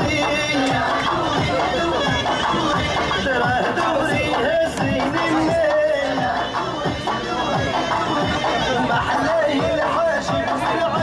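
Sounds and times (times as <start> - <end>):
crowd chatter: 0.0 - 11.0
folk music: 0.0 - 11.0.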